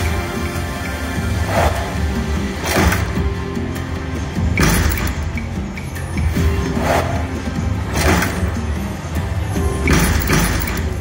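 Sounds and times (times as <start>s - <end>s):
slot machine game music: 0.0s - 11.0s
machine thuds: 2.6s - 3.3s, 4.5s - 5.4s, 7.9s - 8.8s, 9.8s - 11.0s.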